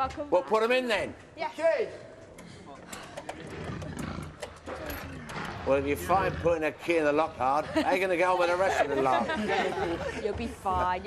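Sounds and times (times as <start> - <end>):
tiger growling low: 3.2 - 8.9.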